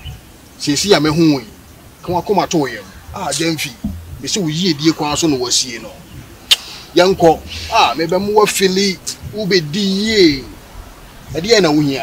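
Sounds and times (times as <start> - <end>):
man speaking: 0.6 - 6.1, 6.9 - 10.6, 11.3 - 12.0
sharp click: 6.5 - 6.7.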